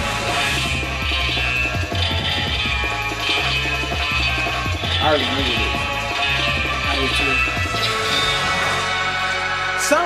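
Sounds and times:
bass line: 0.0 - 8.1
tv theme song: 0.0 - 10.0.

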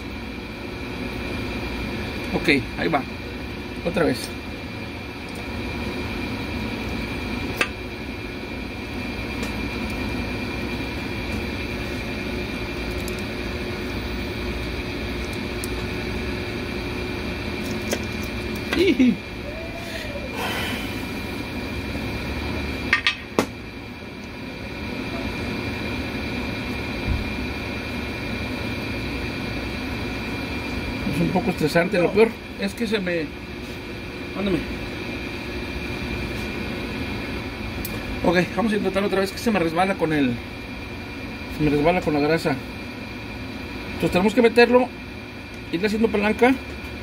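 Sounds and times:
fan humming: 0.0 - 47.0.

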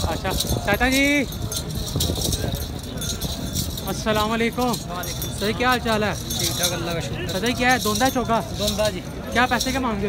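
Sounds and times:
murmur of voices: 0.0 - 10.0
small metal bells jingling: 0.0 - 10.0.

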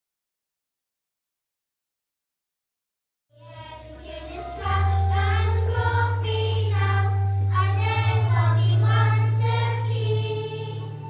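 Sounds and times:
children singing as a choir: 3.4 - 11.0
low held bass notes: 3.4 - 11.0.

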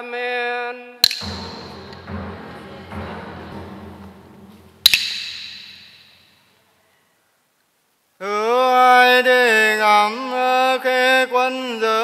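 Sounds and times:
small metal chime strikes: 4.8 - 6.3.

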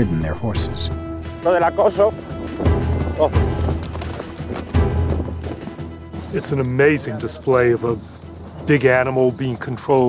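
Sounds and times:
background music: 0.0 - 10.0
horse hoofbeats on turf: 1.5 - 9.6.

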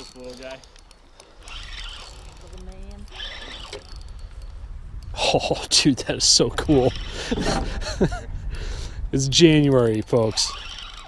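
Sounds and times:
fishing reel being cranked: 0.0 - 7.7, 9.2 - 11.0
wind and handling rumble: 0.0 - 11.0.

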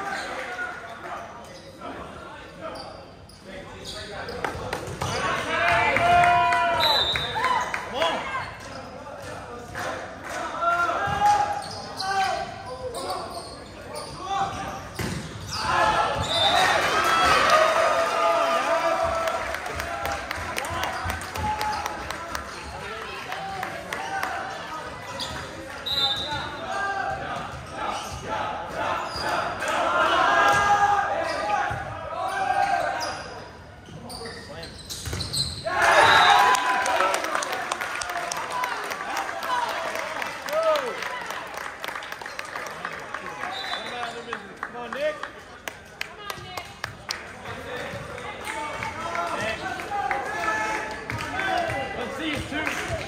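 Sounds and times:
sneakers squeaking on hardwood: 11.1 - 16.7, 32.7 - 35.7
players shouting: 35.6 - 37.6.

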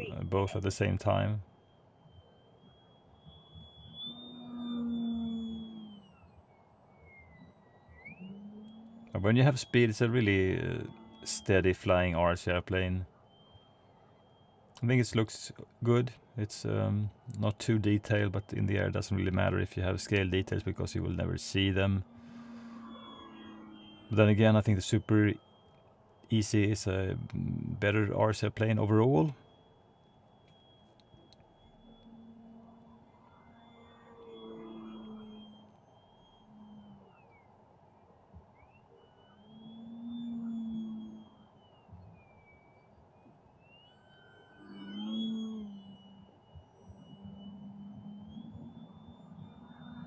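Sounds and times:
faint steady hum: 0.0 - 50.0
propeller drone: 0.0 - 50.0
model airplane motor whine: 1.4 - 14.9, 18.4 - 28.2, 29.0 - 50.0.

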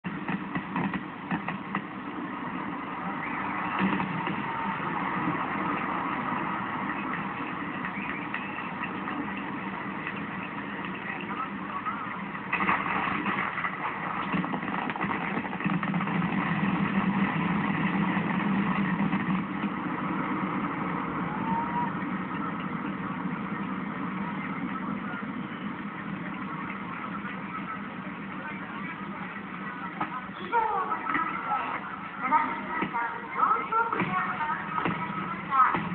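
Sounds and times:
fireworks bursting through a window: 0.1 - 33.0.

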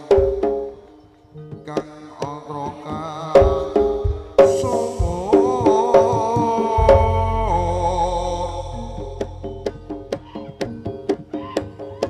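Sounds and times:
drum strokes: 0.0 - 12.0
gamelan ensemble music: 4.4 - 6.1, 6.8 - 12.0.

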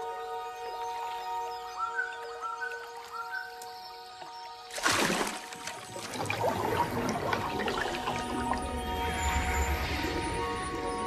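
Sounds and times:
churning bubbling water: 4.7 - 9.5
faint sustained tones: 7.3 - 11.0.

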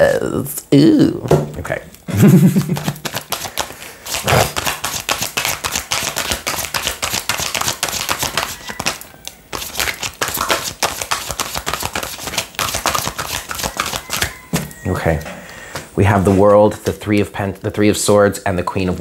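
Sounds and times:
cards being shuffled: 1.9 - 15.3.

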